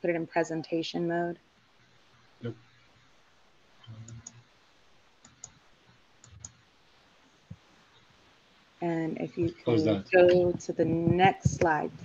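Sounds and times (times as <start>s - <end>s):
computer mouse clicks: 5.2s - 5.6s.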